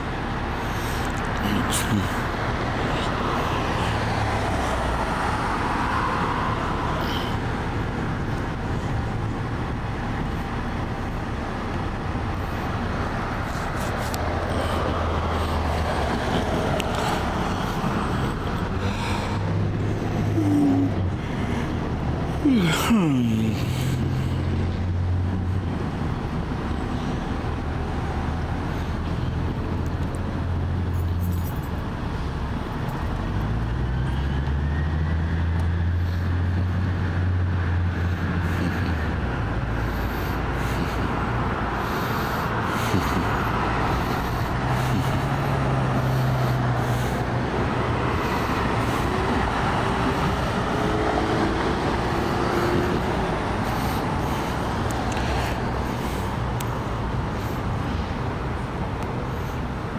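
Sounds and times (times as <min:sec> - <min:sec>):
passing vehicle engine hum: 0:00.0 - 0:59.9
road traffic: 0:00.0 - 0:59.9.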